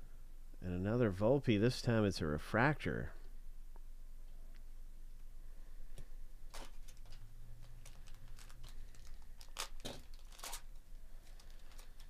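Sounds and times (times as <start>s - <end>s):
wrapper tearing and crinkling: 6.5s - 12.0s.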